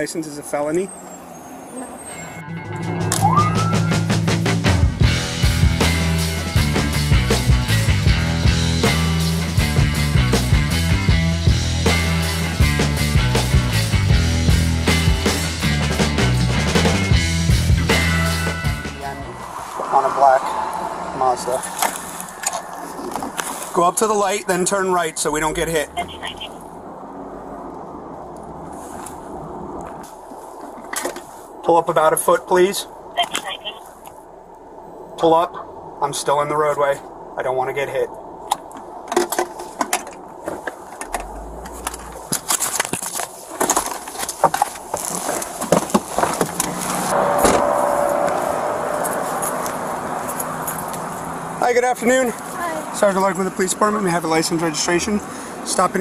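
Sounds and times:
voice: 0.0s - 0.9s, 19.0s - 21.7s, 23.7s - 26.5s, 31.6s - 33.8s, 35.2s - 38.1s, 51.6s - 56.0s
road traffic noise: 0.0s - 56.0s
car cabin noise: 21.2s - 28.6s, 38.4s - 53.2s
clicks and knocks of handling gear: 38.5s - 47.0s.

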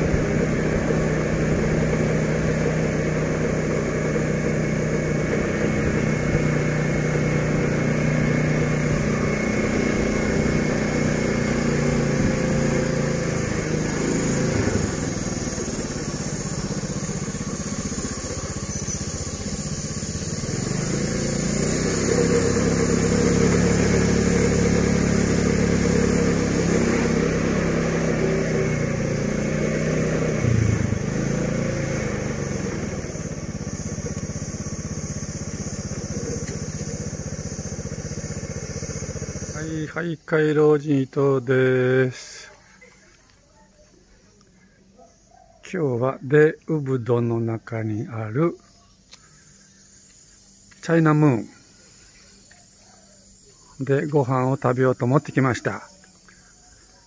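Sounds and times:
motorbike engine running: 0.0s - 45.4s, 46.4s - 57.0s.

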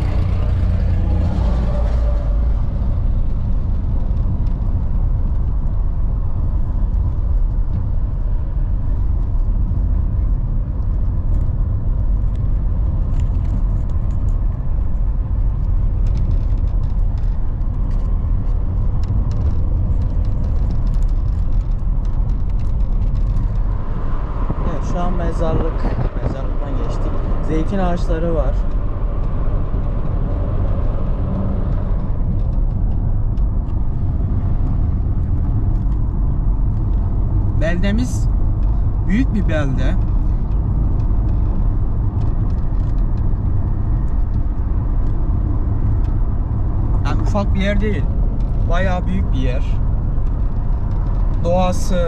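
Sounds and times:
car tyres and engine rumble: 0.0s - 52.0s.

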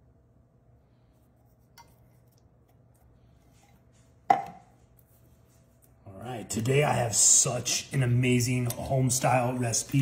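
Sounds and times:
metal can knocking on countertop: 4.3s - 4.6s.

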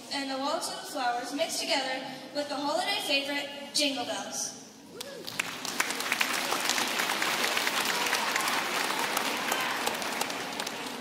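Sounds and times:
audience applause: 5.2s - 11.0s.

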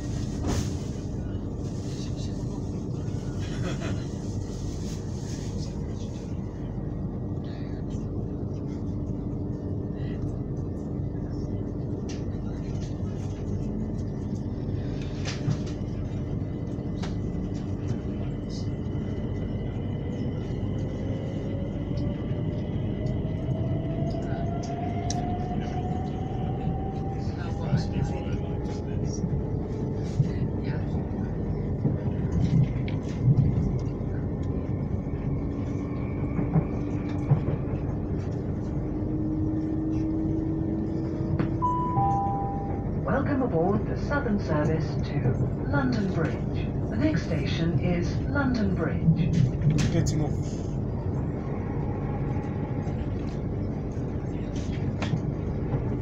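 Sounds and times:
train wheels rumbling on track: 0.0s - 41.8s, 42.8s - 56.0s
constant hum: 0.0s - 56.0s.

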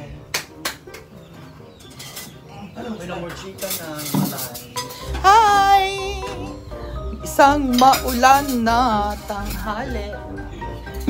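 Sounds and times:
plates and spoons clinking: 1.4s - 5.5s, 6.2s - 11.0s.

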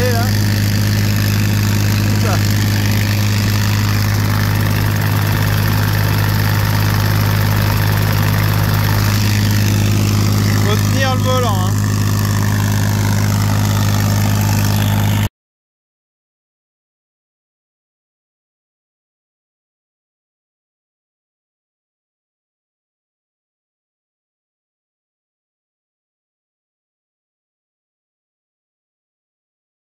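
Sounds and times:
tractor engine running: 0.0s - 15.3s.

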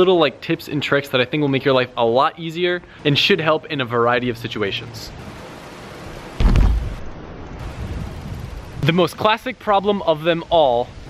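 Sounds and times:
steady rushing hiss: 0.0s - 11.0s
deep boom: 6.4s - 7.1s.

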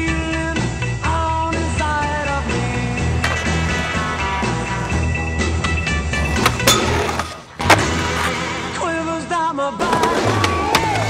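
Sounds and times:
music soundtrack: 0.6s - 9.3s
skateboard wheels rolling: 2.4s - 9.2s, 9.8s - 11.0s
skateboard clacks: 3.1s - 5.0s, 6.2s - 8.8s, 9.8s - 11.0s.

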